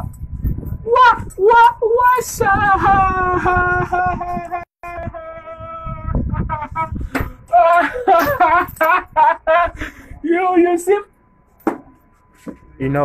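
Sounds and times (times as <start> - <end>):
excited shouting: 0.9 - 6.7
man singing long high note: 4.8 - 6.2.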